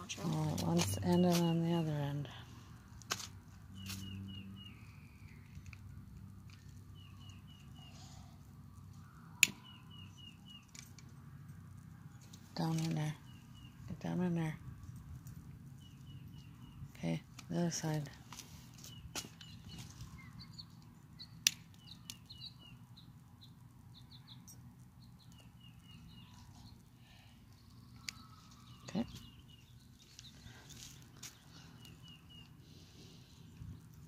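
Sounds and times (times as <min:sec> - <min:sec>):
small birds chirping: 0:00.0 - 0:02.8, 0:03.4 - 0:34.0.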